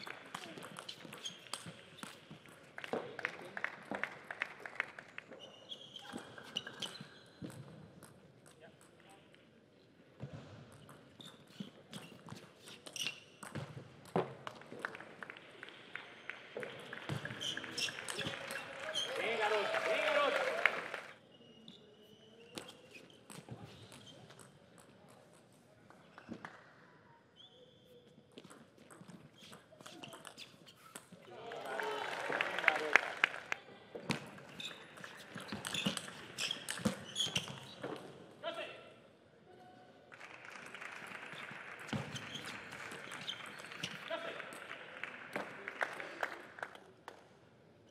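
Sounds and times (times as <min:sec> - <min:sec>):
shoes squeaking on court floor: 0:00.0 - 0:03.0, 0:05.2 - 0:09.1, 0:10.2 - 0:14.8, 0:16.2 - 0:20.6, 0:21.2 - 0:26.5, 0:27.1 - 0:31.3, 0:33.9 - 0:38.4, 0:40.7 - 0:44.8
table tennis ball bouncing: 0:00.2 - 0:03.0, 0:16.6 - 0:19.3, 0:34.1 - 0:38.1.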